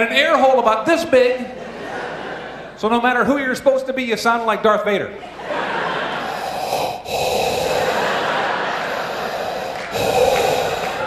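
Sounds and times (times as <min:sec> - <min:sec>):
man breathing heavily into microphone: 0:06.2 - 0:11.0.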